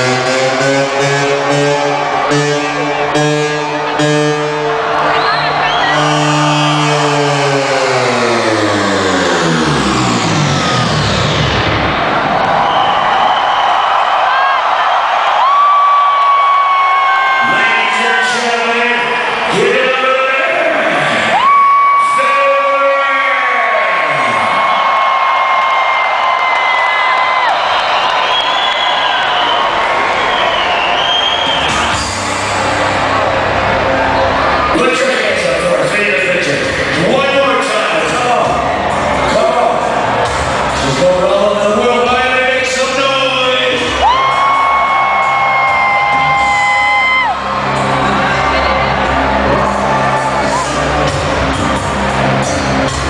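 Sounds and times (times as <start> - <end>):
deep bass: 0.0 - 13.6, 31.4 - 53.0
synth pitch-down sweep: 0.0 - 13.6, 31.4 - 43.0
electronic dance music: 0.0 - 25.0, 27.2 - 53.0
crowd cheering and screaming: 0.0 - 53.0.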